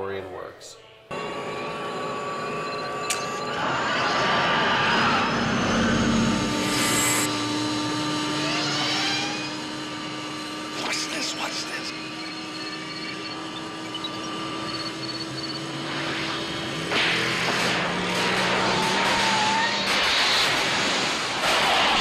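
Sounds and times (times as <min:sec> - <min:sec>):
steady hum: 0:01.1 - 0:21.8
car engine rising: 0:01.1 - 0:22.0
electrical rushing and crackling: 0:10.8 - 0:22.0.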